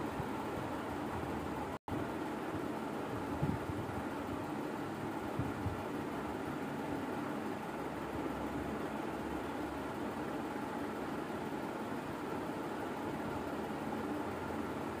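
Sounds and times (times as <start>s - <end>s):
steady background hum and hiss: 0.0s - 15.0s.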